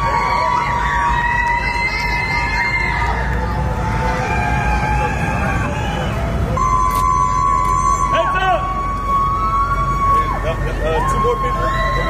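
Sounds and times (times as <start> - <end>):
crowd voices calling out: 0.0 - 12.0
high-pitched siren-like tone: 5.2 - 12.0.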